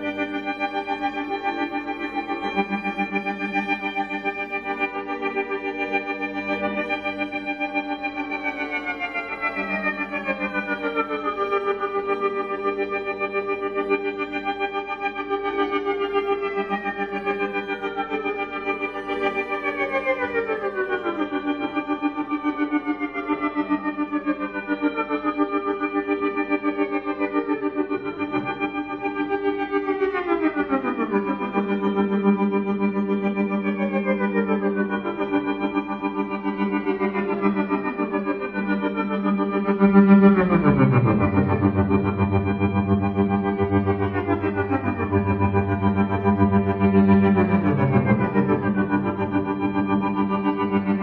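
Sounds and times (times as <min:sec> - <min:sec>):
layered bowed violin tones: 0:00.0 - 0:51.0.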